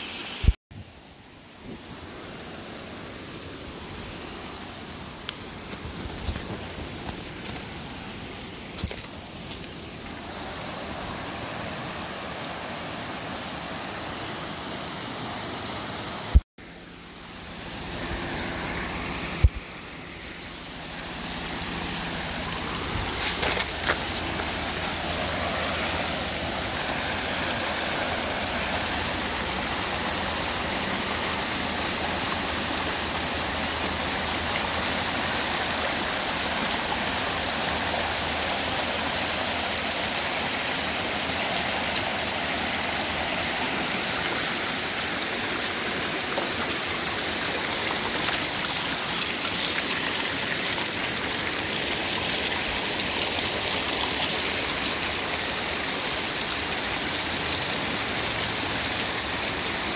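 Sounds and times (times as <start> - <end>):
stream flowing over stones: 0.0 - 59.9.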